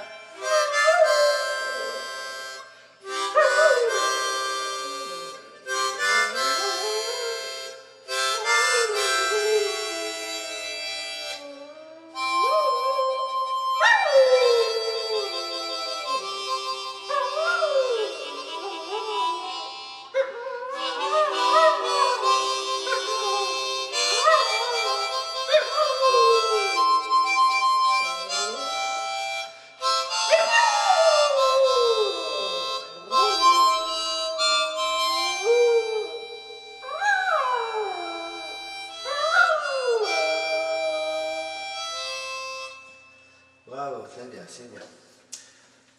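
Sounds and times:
harmonica playing chords: 0.0 - 44.7
small dog howling: 20.2 - 26.9, 35.2 - 41.4.

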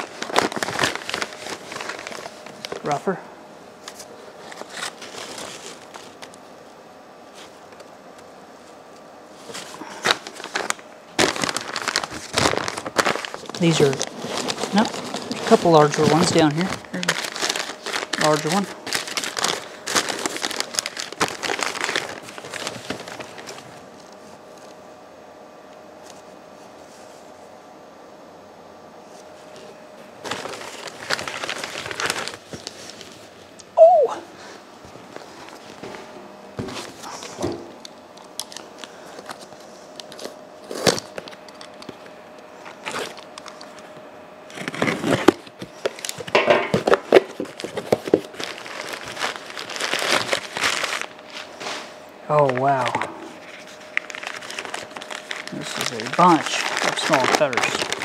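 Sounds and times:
newspaper crumpling and rustling: 0.0 - 3.2, 3.8 - 6.4, 9.3 - 24.7, 29.1 - 33.5, 35.1 - 36.0, 38.2 - 43.9, 44.5 - 58.0
faint steady hum: 0.0 - 58.0.

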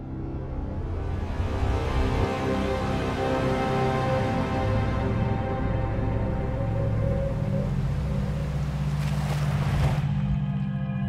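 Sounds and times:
low music drone: 0.0 - 11.0
watery whoosh sound effect: 6.2 - 10.4.

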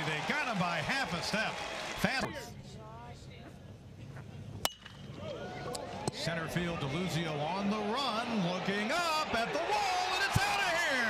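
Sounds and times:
crowd noise: 0.0 - 3.0, 5.0 - 11.0
metal bat hitting ball: 4.6 - 5.1.

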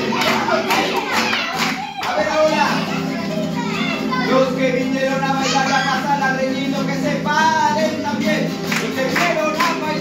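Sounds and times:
children calling out: 0.0 - 6.8
acoustic guitar playing: 0.0 - 10.0.

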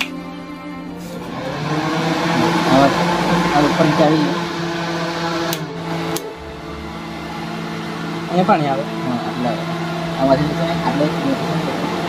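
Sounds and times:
air cooler fan humming: 0.0 - 12.0
sharp clicks: 5.5 - 6.3.

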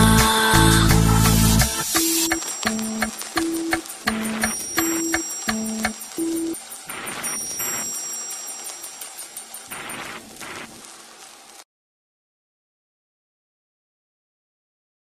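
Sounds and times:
clock ticking: 2.0 - 10.8.

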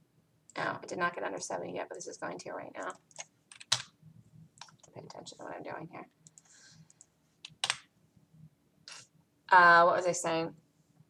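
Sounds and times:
computer keyboard keystrokes: 2.8 - 3.9, 6.2 - 7.8.

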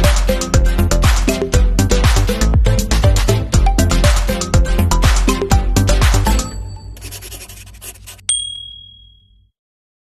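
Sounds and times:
intro music: 1.1 - 7.5
bright chime: 8.3 - 9.3.

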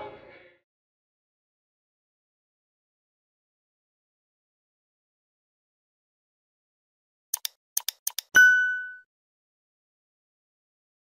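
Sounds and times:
quick clicks: 7.3 - 8.4
ringing ding: 8.4 - 9.1.

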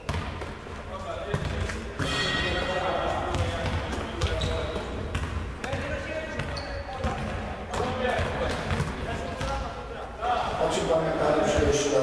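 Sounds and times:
volleyball being struck: 1.3 - 9.6.

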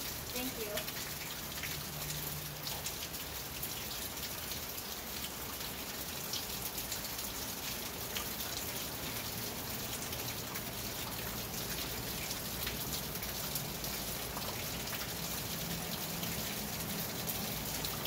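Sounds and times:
rain pattering on a roof: 0.0 - 18.0.

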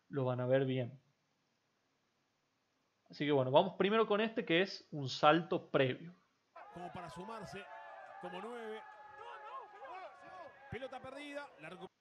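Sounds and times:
overlapping voices: 6.6 - 12.0.

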